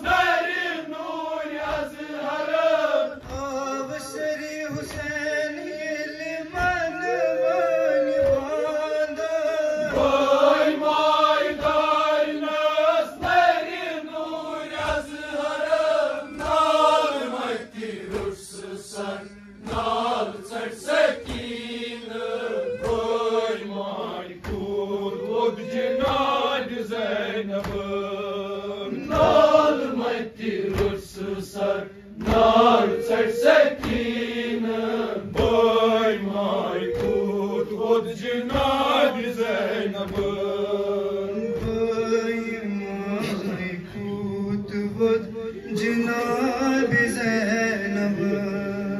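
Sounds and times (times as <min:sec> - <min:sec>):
men chanting a lament: 0:00.0 - 0:48.9
chest-beating thumps: 0:19.2 - 0:23.6.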